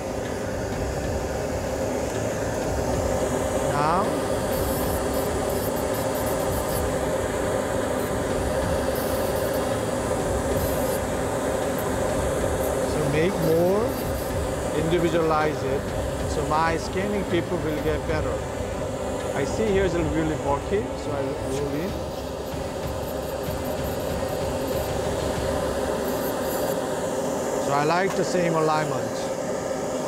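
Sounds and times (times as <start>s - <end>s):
dental handpiece motor whine: 0.0s - 30.0s.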